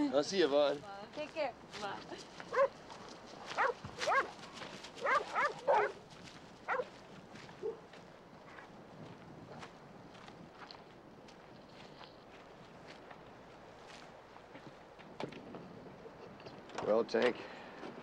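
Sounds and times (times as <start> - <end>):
dog barking: 2.5 - 2.8, 3.5 - 4.4, 5.0 - 6.0, 6.7 - 6.9, 7.6 - 7.8.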